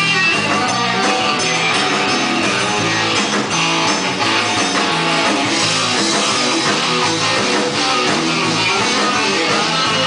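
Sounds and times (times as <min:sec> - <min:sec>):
electric guitar: 0:00.0 - 0:10.0
steady bass notes: 0:00.0 - 0:10.0.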